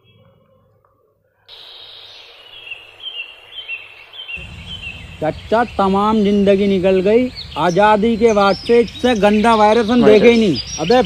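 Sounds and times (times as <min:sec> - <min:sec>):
steady background hiss: 0:01.0 - 0:11.0
bird chirping: 0:01.5 - 0:11.0
low rumble: 0:04.4 - 0:11.0.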